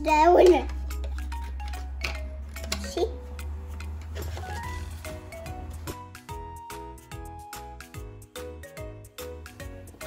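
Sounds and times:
child's voice: 0:00.0 - 0:00.8, 0:02.8 - 0:03.2
background music: 0:00.0 - 0:10.0.

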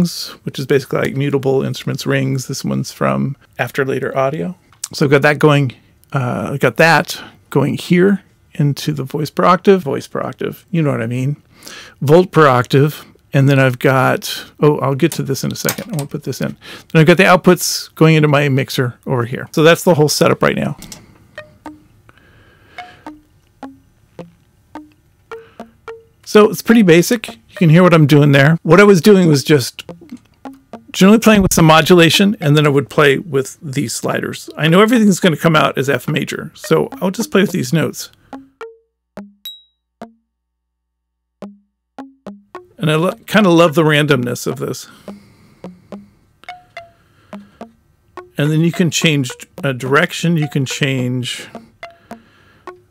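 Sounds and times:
plucked chime-like synth notes: 0:21.4 - 0:21.8, 0:22.8 - 0:26.1, 0:45.6 - 0:49.7, 0:50.4 - 0:50.9, 0:51.8 - 0:52.9
plucked synth notes: 0:21.4 - 0:21.9, 0:22.8 - 0:28.2, 0:29.8 - 0:32.7, 0:36.6 - 0:40.2, 0:41.4 - 0:52.9.

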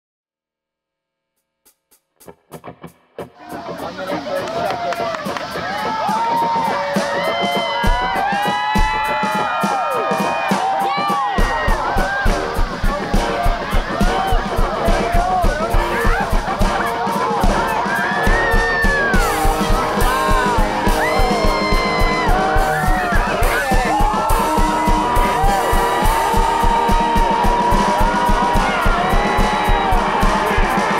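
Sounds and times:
electronic drum beat: 0:01.7 - 0:30.9
electric guitar with bent notes: 0:02.2 - 0:10.2, 0:11.0 - 0:30.9.

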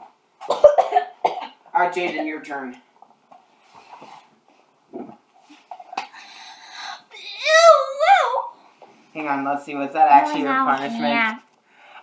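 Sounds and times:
boy yelping: 0:06.8 - 0:08.6.

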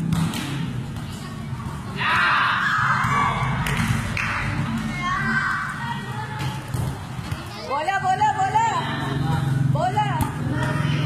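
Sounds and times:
children shouting: 0:02.0 - 0:03.7.

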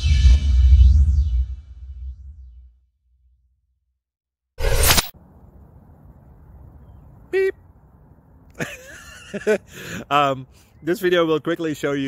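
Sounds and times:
low outdoor rumble: 0:05.2 - 0:08.6.

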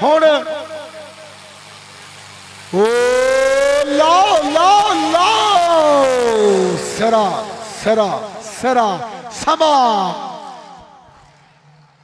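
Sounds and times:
man speaking: 0:00.0 - 0:01.1, 0:02.8 - 0:10.6
man crying out over loudspeaker: 0:02.8 - 0:10.8.

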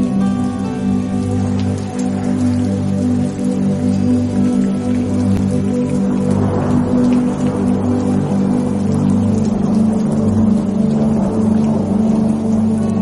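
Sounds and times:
ambient music low chords: 0:00.0 - 0:13.0.

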